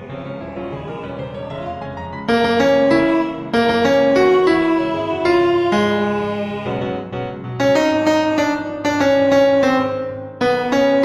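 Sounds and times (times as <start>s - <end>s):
piano playing chords and melody: 0.0s - 11.0s.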